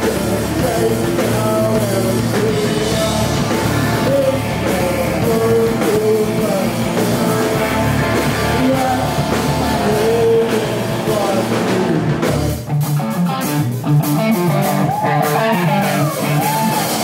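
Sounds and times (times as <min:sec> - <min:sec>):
bass guitar: 0:00.0 - 0:17.0
drums: 0:00.0 - 0:17.0
electric guitar: 0:00.0 - 0:17.0.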